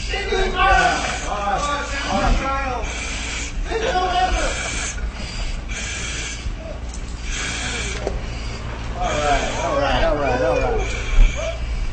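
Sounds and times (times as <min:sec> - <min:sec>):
breathing through mask hissing: 0:00.0 - 0:11.9.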